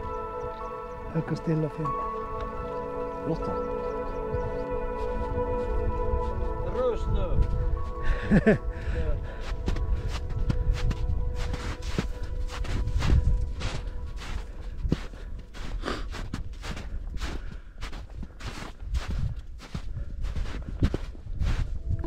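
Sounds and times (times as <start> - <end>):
footsteps on snow: 0.0 - 22.0.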